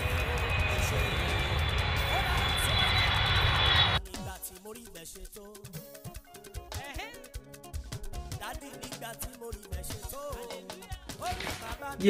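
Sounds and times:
rushing roar with high whine: 0.0 - 4.0.

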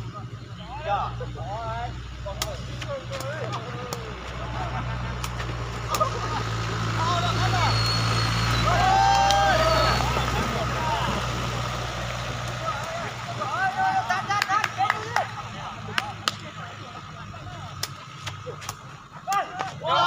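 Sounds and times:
vehicle engine running: 0.0 - 20.0
people calling out: 5.8 - 11.5, 12.4 - 17.6, 18.6 - 20.0.

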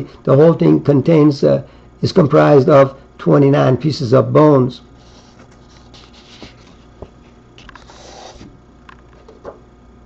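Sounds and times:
book page rustling: 5.0 - 8.5.

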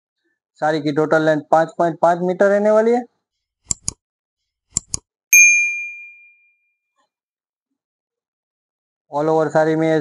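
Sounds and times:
notification bell ding: 5.4 - 6.6.

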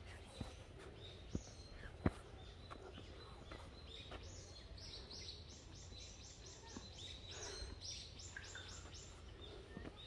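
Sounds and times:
songbird calling: 0.0 - 10.0.

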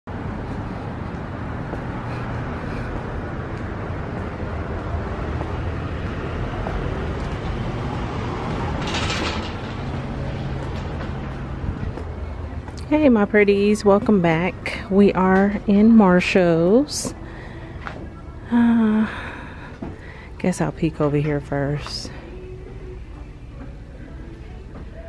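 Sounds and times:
traffic rumble: 0.0 - 25.0.

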